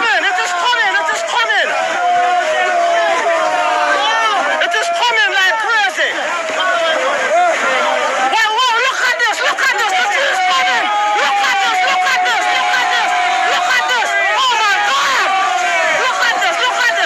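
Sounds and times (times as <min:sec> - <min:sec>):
group of people talking excitedly: 0:00.0 - 0:17.0.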